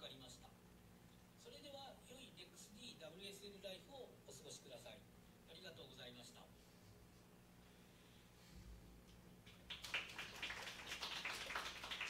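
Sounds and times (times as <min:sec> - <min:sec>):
audience clapping: 0:09.4 - 0:12.0.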